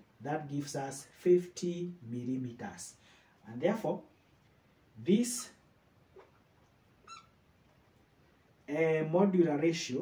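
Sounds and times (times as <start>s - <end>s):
marker squeaking on whiteboard: 6.1s - 7.4s.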